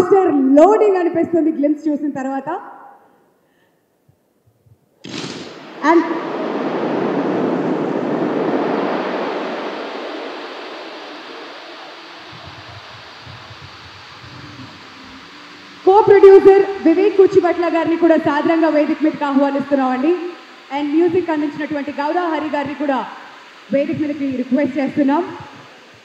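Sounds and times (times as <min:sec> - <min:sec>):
crowd cheering: 0:05.5 - 0:16.9.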